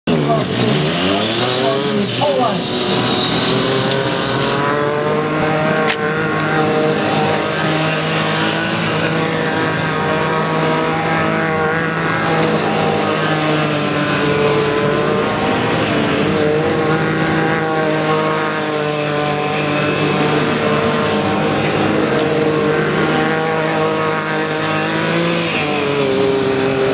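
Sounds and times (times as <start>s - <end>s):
race car engine: 0.0s - 26.9s.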